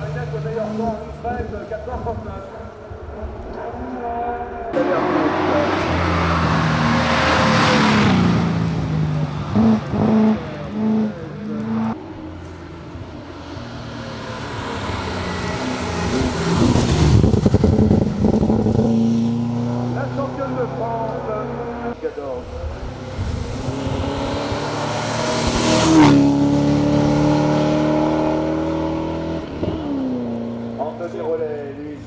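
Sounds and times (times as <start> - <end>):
race car engine revving: 4.7 - 12.1, 13.6 - 31.1.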